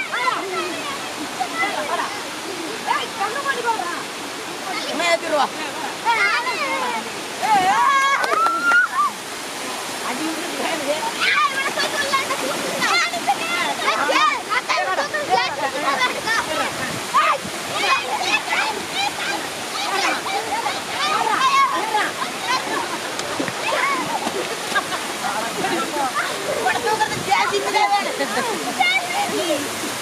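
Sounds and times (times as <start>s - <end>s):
water rushing over a weir: 0.0s - 30.0s
voices shouting: 5.9s - 9.3s, 11.1s - 29.8s.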